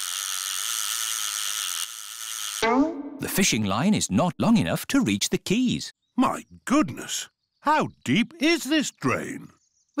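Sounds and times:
fishing reel whirring: 0:00.0 - 0:02.6.

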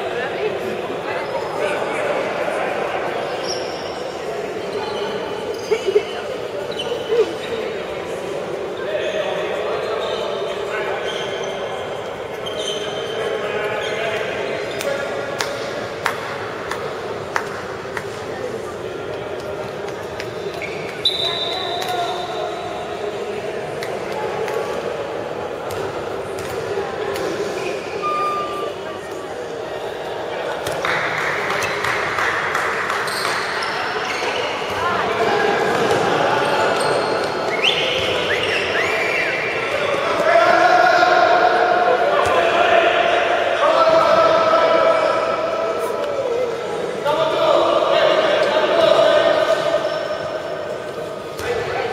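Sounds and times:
voices shouting in echoing hall: 0:00.0 - 0:51.9.

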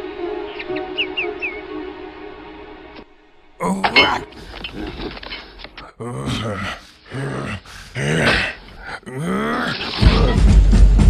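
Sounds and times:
man grunting and straining: 0:03.6 - 0:05.2, 0:05.8 - 0:10.5.

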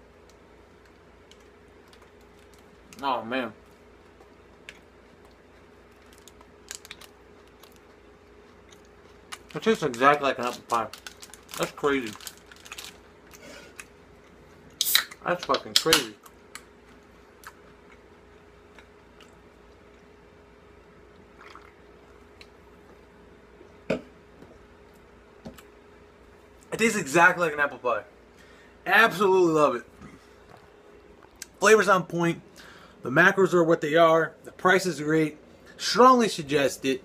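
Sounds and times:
faint steady hum: 0:00.0 - 0:37.0
person chewing crunchy bar: 0:03.6 - 0:14.6.

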